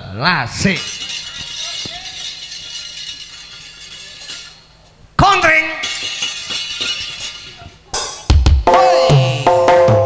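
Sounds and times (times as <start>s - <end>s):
gamelan metallic tones ringing: 0.5s - 10.0s.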